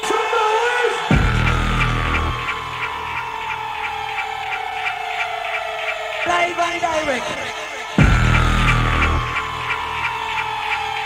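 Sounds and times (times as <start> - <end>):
quick regular ticking: 0.0 - 11.0
deep bass sound: 1.1 - 3.0, 8.0 - 9.8
synth tone sliding downward: 1.1 - 11.0.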